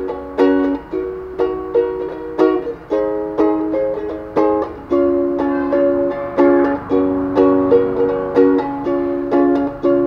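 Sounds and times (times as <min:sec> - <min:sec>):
ukulele strumming chords: 0:00.0 - 0:10.0.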